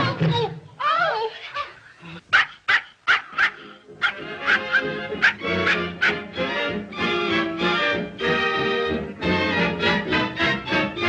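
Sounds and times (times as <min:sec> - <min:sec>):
dog yelping: 0:02.3 - 0:06.3
orchestral music: 0:03.8 - 0:11.0.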